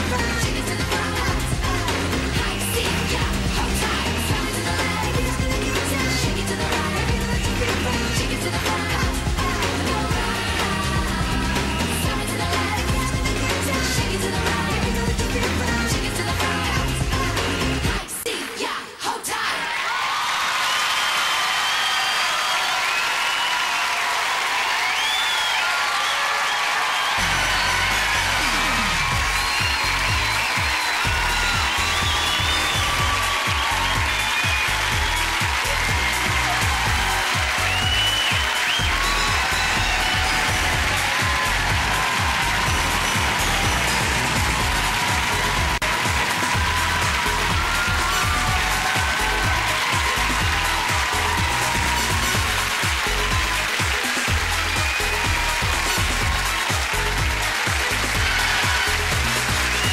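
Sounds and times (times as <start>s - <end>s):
music with heavy bass beat: 0.0s - 18.0s, 27.2s - 59.9s
whoops and shouts: 19.3s - 53.7s
audience applauding: 19.7s - 59.9s.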